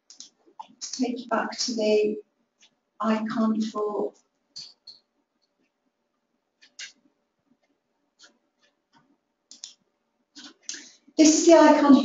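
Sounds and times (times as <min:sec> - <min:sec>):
computer mouse clicking: 0:00.1 - 0:01.0, 0:06.6 - 0:07.0, 0:07.6 - 0:09.8.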